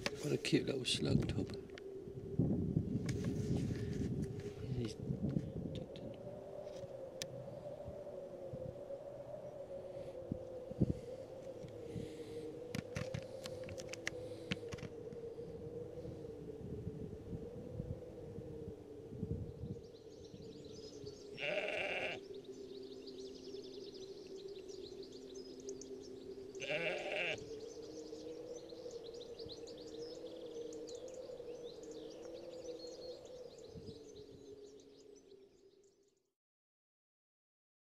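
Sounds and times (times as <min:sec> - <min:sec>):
faint high chirping: 0:17.6 - 0:36.1
sheep bleating: 0:21.4 - 0:22.2, 0:26.6 - 0:27.4.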